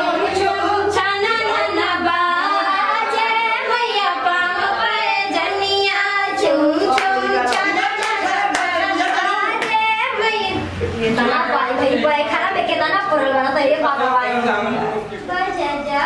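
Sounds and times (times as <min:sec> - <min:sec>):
women singing devotional song: 0:00.0 - 0:14.4
hand claps: 0:06.9 - 0:09.8.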